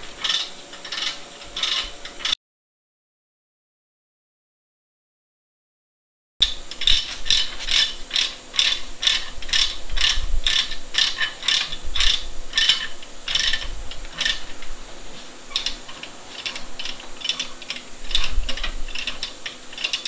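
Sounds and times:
ratchet strap clicking: 0.2s - 2.4s, 6.4s - 14.5s, 15.5s - 20.0s.

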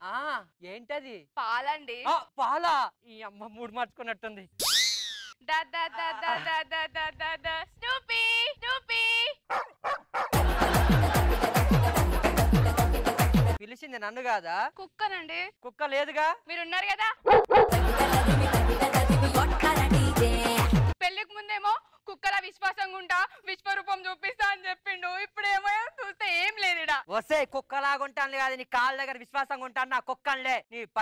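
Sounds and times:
cartoon swoop sound effect: 4.6s - 5.4s
dog-like barking yelps: 9.5s - 10.4s, 17.3s - 17.8s
lively music with bass swoops: 10.4s - 13.6s, 17.7s - 21.0s.

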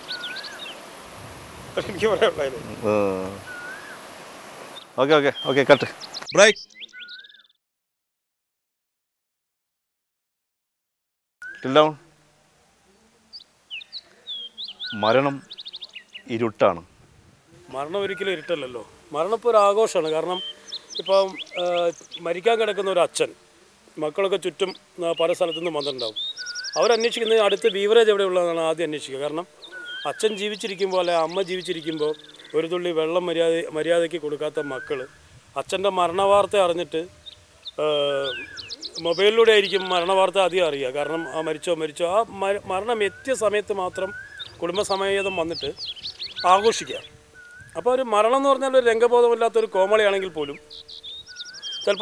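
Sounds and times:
birds chirping: 0.0s - 7.6s, 11.4s - 12.0s, 12.8s - 16.9s, 17.5s - 52.0s
man speaking: 1.8s - 3.5s, 17.7s - 20.4s, 37.8s - 45.8s, 47.8s - 50.6s.

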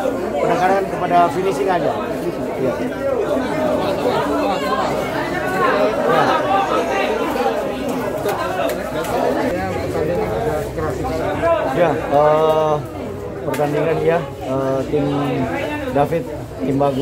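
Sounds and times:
overlapping indistinct speech: 2.1s - 15.5s.

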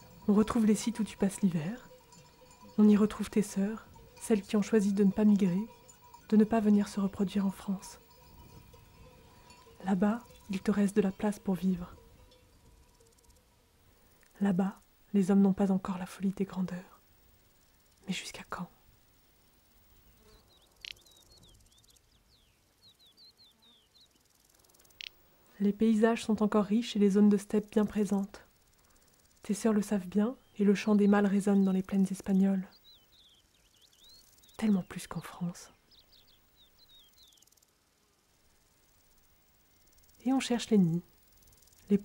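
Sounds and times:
faint outdoor ambience: 0.0s - 42.0s
insects chirping: 0.0s - 42.0s
high chirps of small birds: 20.0s - 25.1s, 29.5s - 37.6s.

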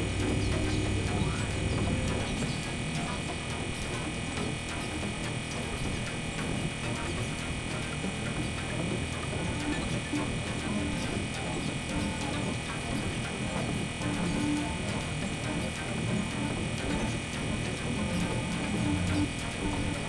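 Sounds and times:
buzzing crackling synthesizer drone: 0.0s - 20.0s.

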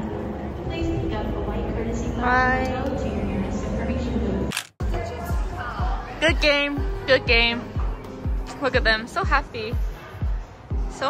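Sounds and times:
sharp click: 4.5s - 4.8s.

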